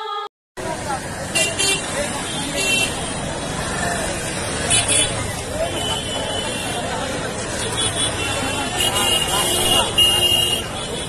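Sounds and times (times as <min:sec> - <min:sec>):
crowd chatter: 0:00.6 - 0:11.0.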